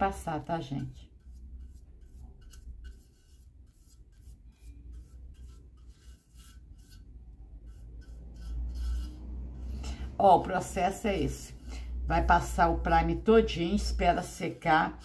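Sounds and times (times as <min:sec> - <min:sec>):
paintbrush brushing on metal: 0:00.0 - 0:15.0.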